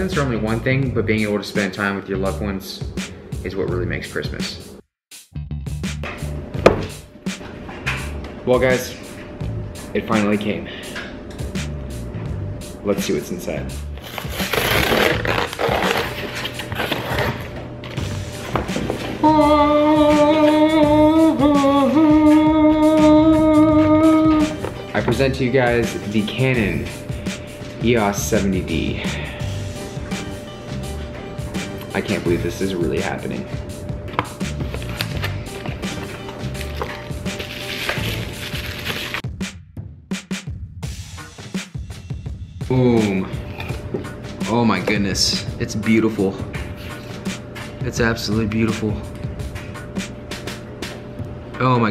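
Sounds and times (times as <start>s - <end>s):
bass line over a beat: 0.0s - 1.2s, 2.2s - 8.8s, 18.0s - 37.3s
background music: 0.0s - 51.9s
packaging rustling and crinkling: 14.0s - 17.5s, 34.7s - 39.2s.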